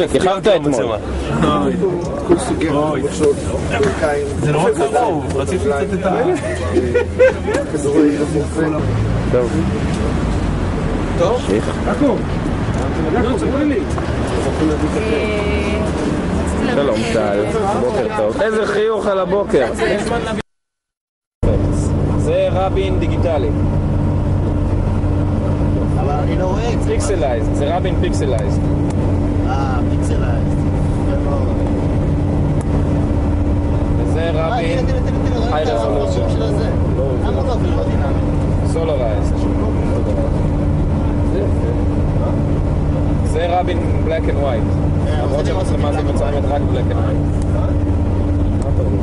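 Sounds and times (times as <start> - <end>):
people talking: 0.0 - 10.1, 11.0 - 20.4, 21.4 - 23.6, 25.9 - 28.8, 29.4 - 31.9, 33.9 - 49.0
people's voices: 0.0 - 20.4, 33.6 - 49.0
low steady rumble: 21.4 - 49.0.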